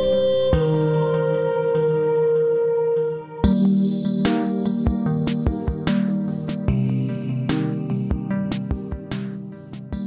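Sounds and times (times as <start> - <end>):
instrumental background music: 0.0 - 10.0.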